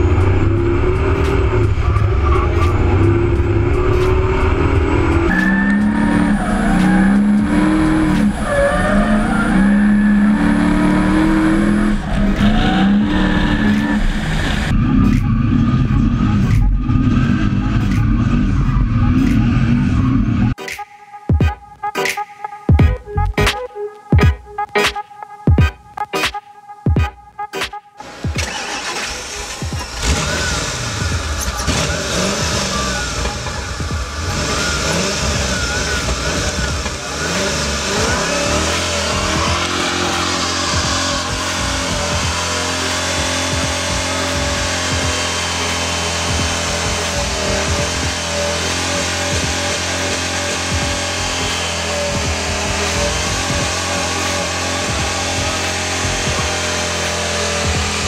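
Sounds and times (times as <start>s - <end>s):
truck engine revving: 0.0s - 20.6s, 28.0s - 58.0s.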